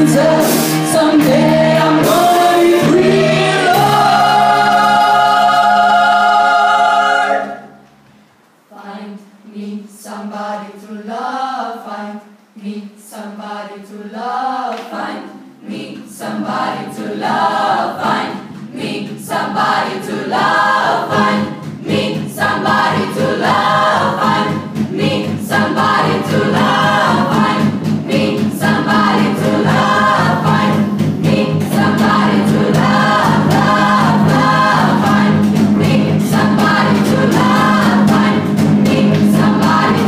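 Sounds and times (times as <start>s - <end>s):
group singing: 0.0s - 7.9s, 8.7s - 40.0s.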